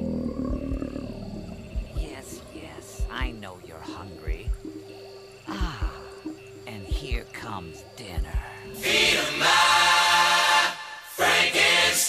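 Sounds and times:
low growl: 0.0 - 2.0
heartbeat thumping: 0.0 - 8.8.

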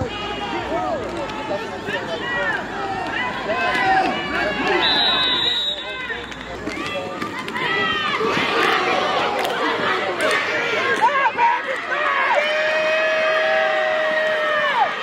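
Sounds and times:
spectators shouting: 0.0 - 15.0
high referee whistle: 4.7 - 6.0.

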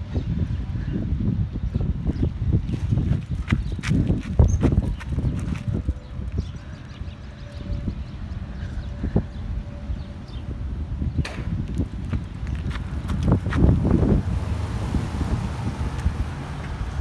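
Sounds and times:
wind rumbling on microphone: 0.0 - 17.0
footsteps on gravel: 2.6 - 5.9, 11.7 - 13.8.

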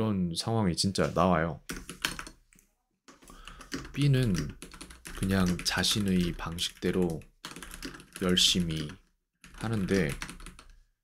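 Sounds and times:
typing on computer keyboard: 1.7 - 2.4, 3.1 - 10.8.

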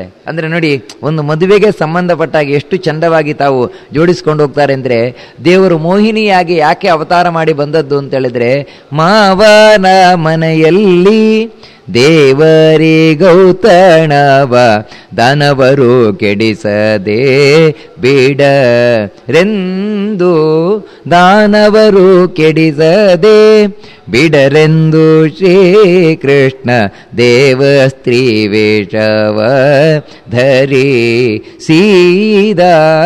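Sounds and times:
man chanting melodically: 0.0 - 33.0.

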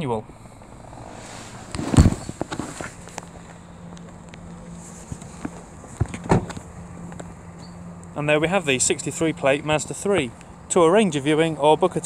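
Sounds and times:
low hum: 0.0 - 12.0
footsteps beside car: 0.3 - 8.2, 9.9 - 10.6
heavy thumps: 0.6 - 3.6
handling knocks: 1.5 - 3.4.

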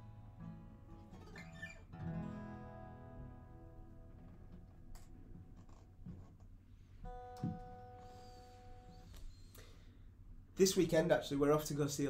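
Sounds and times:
acoustic guitar note plucked: 0.0 - 4.8, 7.0 - 9.1.

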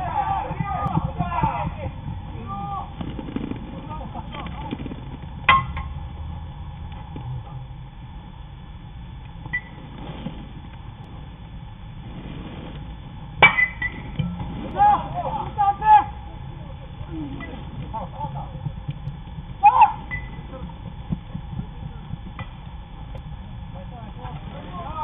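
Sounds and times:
players shouting: 0.0 - 3.0, 14.4 - 18.5, 19.6 - 20.7
metal bat pinging ball: 5.4 - 6.0, 13.4 - 14.6.

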